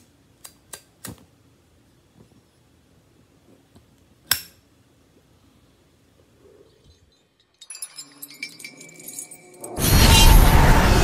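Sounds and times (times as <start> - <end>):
high glassy tinkling: 6.8 - 10.8.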